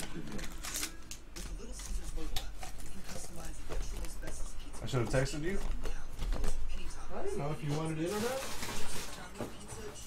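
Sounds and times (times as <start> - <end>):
trading cards rustling: 0.0 - 4.1.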